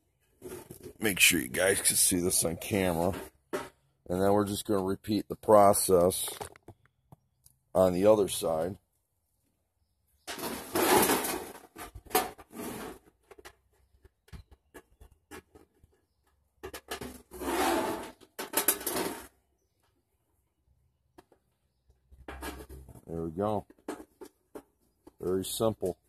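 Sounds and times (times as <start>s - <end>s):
plastic rubbing and scraping on metal: 0.1s - 3.9s, 10.2s - 20.1s, 21.1s - 26.0s.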